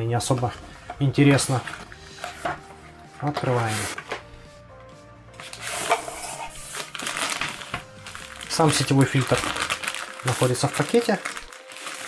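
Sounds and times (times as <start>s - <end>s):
cardboard packaging rustling: 0.2s - 4.2s, 5.4s - 12.0s
plastic bag crinkling: 5.5s - 12.0s.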